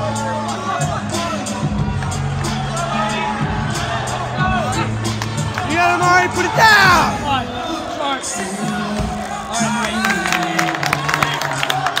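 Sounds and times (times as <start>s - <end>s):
music: 0.0s - 12.0s
hand clapping and applause: 5.1s - 5.9s, 8.7s - 12.0s.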